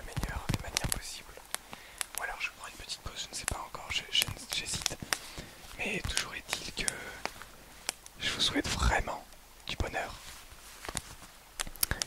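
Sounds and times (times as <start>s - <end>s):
soft whispering: 0.0s - 10.7s.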